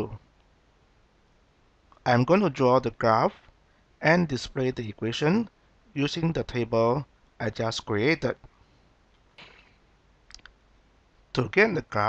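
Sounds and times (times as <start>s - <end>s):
small sharp clicks: 9.1s - 10.6s.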